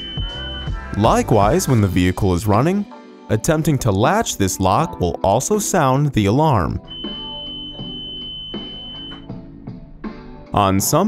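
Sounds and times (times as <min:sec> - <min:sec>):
high-pitched alarm buzzer: 0:06.9 - 0:09.2.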